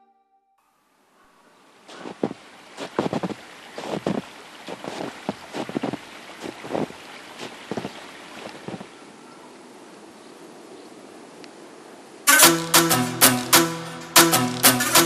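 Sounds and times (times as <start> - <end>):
short crackles and rustles: 1.9 - 9.0.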